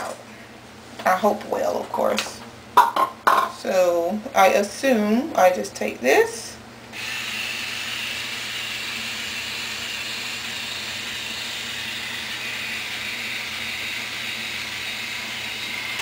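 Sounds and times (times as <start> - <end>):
rotating hair iron whirring: 6.9 - 16.0.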